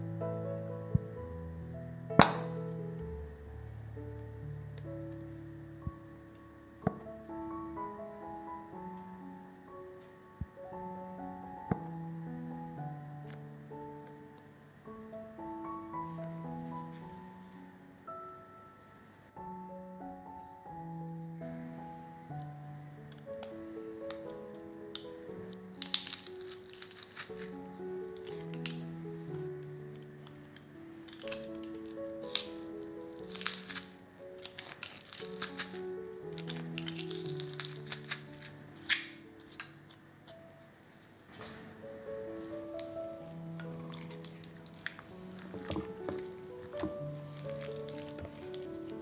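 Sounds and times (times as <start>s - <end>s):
gentle instrumental music: 0.0s - 49.0s
garlic press crushing cloves: 2.2s - 2.6s, 23.1s - 29.0s, 30.0s - 40.4s, 42.1s - 49.0s.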